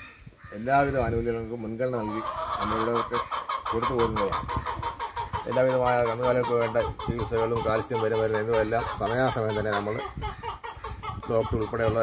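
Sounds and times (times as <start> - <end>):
chicken clucking: 0.5 - 12.0.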